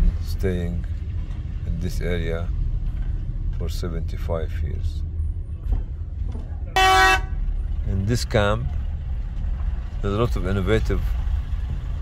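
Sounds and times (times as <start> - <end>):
car interior rumble: 0.0 - 12.0
car horn blast: 6.8 - 7.4.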